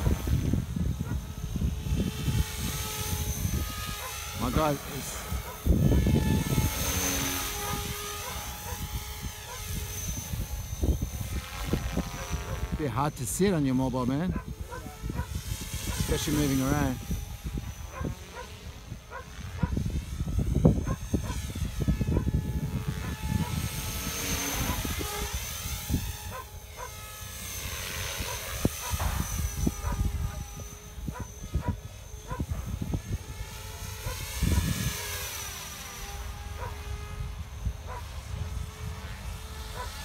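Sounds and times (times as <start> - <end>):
rc helicopter motor whine: 0.0 - 40.0
wind rumbling on microphone: 0.0 - 40.0.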